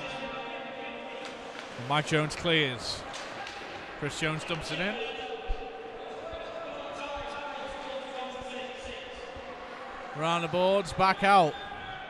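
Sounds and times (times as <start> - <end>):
hum of crowd voices: 0.0 - 12.0.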